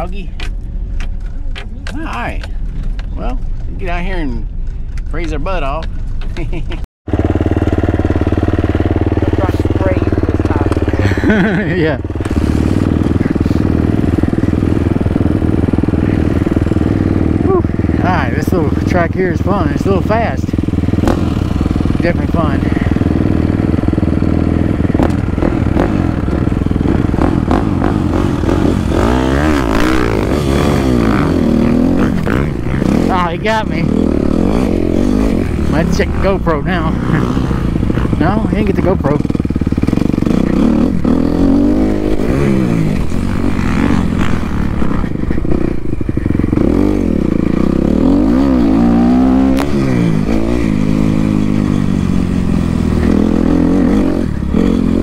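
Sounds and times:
dirt bike engine: 0.0s - 55.0s.

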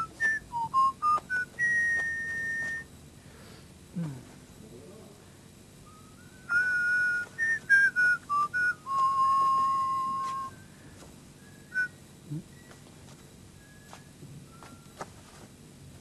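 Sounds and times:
person whistling a tune: 0.0s - 2.9s, 5.8s - 12.8s, 13.6s - 15.2s.

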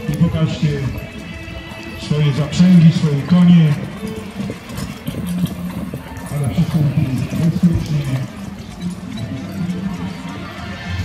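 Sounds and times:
carriage wheels rumbling: 0.0s - 11.0s
horse hoofbeats: 0.0s - 11.0s.

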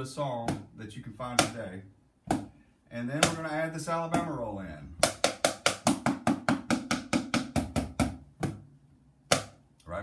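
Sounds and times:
drumsticks striking books: 3.2s - 4.4s, 5.0s - 8.6s, 9.2s - 9.6s.

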